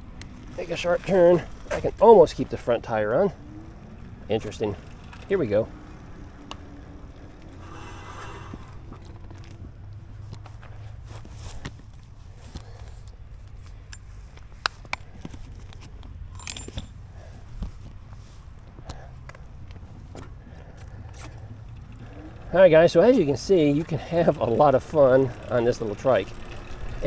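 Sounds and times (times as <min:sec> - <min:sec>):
low steady rumble: 0:00.0 - 0:27.0.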